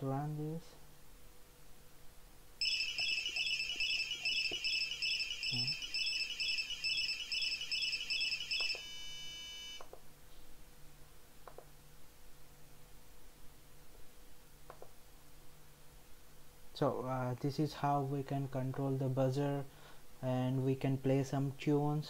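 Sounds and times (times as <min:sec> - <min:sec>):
steady buzzer tone: 0:02.6 - 0:09.8.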